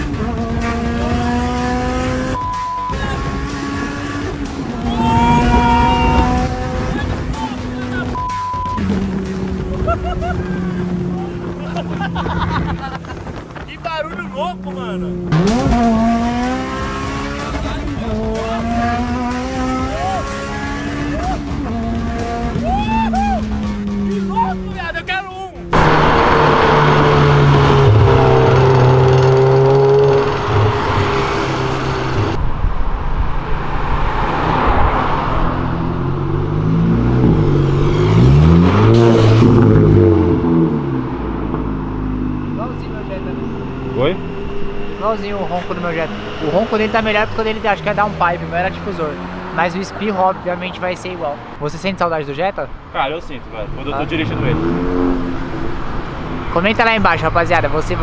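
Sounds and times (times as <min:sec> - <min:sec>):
car engine revving inside cabin: 0:00.0 - 0:04.6, 0:15.0 - 0:24.2, 0:25.7 - 0:32.4
car engine running on street: 0:00.0 - 0:58.0.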